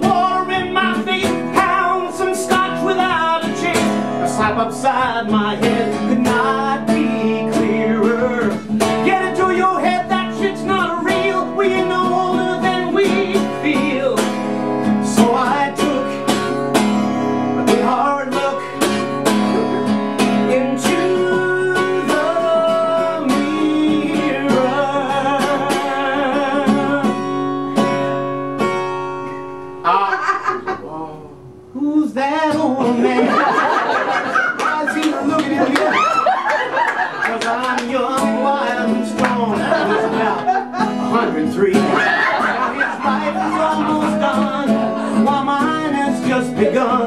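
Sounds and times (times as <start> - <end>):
man singing: 0.0 - 27.5, 29.8 - 36.3, 37.2 - 47.0
acoustic guitar strummed and picked: 0.0 - 47.0.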